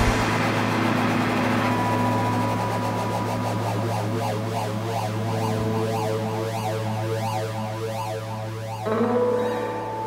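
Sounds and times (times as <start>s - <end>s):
guitar amplifier drone: 0.0s - 10.0s.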